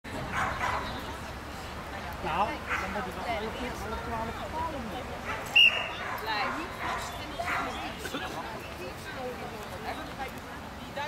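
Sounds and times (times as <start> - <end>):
dog barking: 0.3 - 0.9, 2.7 - 3.0, 5.2 - 7.8.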